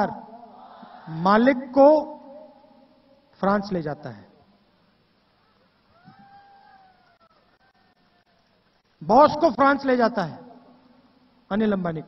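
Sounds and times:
high-pitched meow-like cry: 5.4s - 8.3s.

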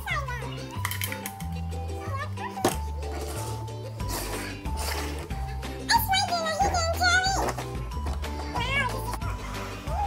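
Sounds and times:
background music low notes: 0.0s - 10.0s.

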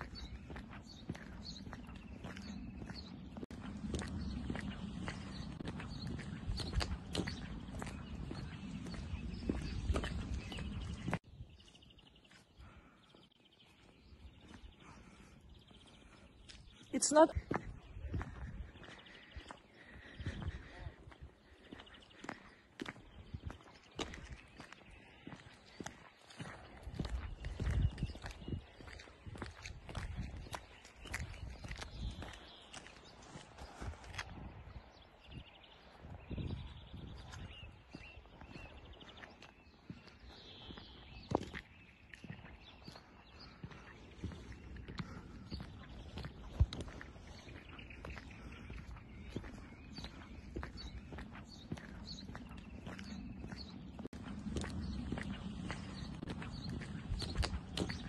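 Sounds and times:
footsteps on snow: 0.0s - 58.0s.

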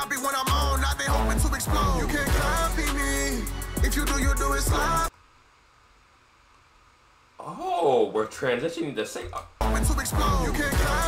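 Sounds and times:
rap music: 0.0s - 5.1s, 9.6s - 11.0s
faint steady hiss: 5.0s - 9.6s.

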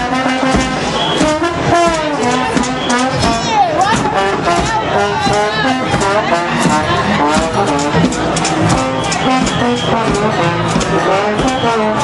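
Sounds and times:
crowd talking: 0.0s - 12.0s
live street music: 0.0s - 12.0s.

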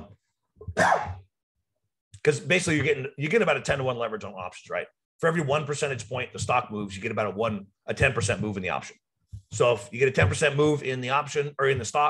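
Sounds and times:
man coughing: 0.7s - 1.3s.

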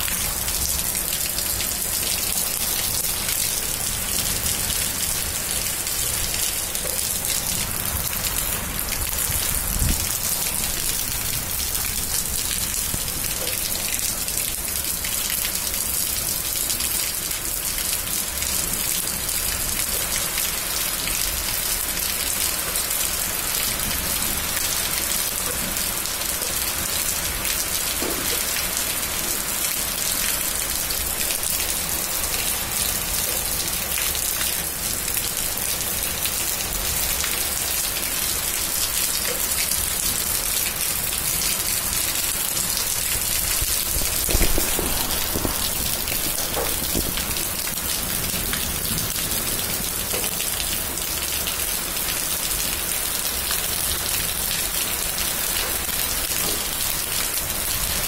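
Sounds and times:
heavy rain splashing into water: 0.0s - 58.0s.

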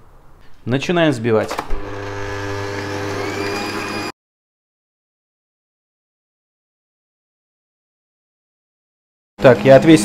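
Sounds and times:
electric mixer whisking: 1.8s - 4.1s.

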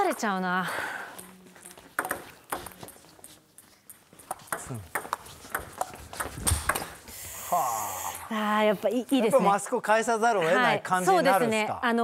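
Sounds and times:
table tennis ball clicks: 1.7s - 3.0s, 4.2s - 7.0s.

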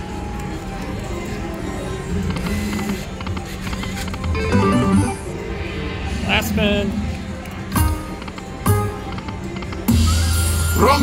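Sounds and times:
slot machine spin music: 4.2s - 5.4s, 6.5s - 11.0s
slot machine reel-stop sounds: 4.3s - 5.4s, 9.9s - 11.0s.

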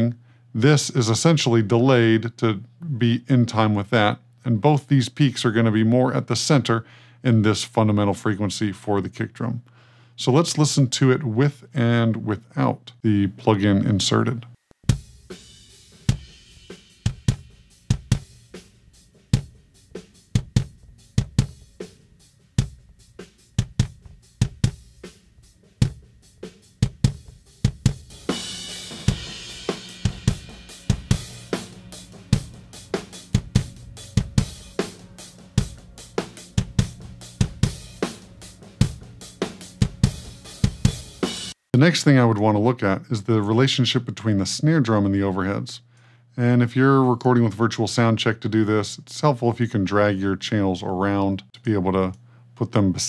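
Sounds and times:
cymbals: 14.8s - 41.6s
hi-hat: 14.8s - 41.6s
kick drum: 17.1s - 18.3s, 20.4s - 21.6s, 22.6s - 22.9s, 23.6s - 24.9s, 25.8s - 26.2s, 26.8s - 28.1s
snare drum: 25.8s - 41.6s.

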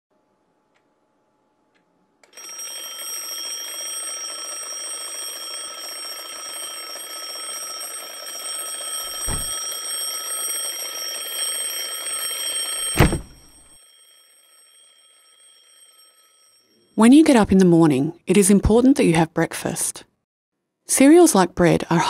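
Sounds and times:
alarm clock ringing: 2.2s - 17.3s
low thump: 9.1s - 9.6s, 13.0s - 13.6s.

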